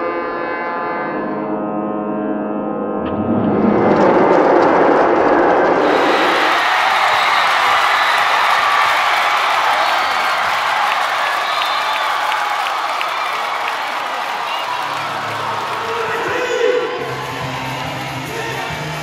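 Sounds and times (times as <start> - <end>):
crowd cheering and applauding: 5.8 - 19.0.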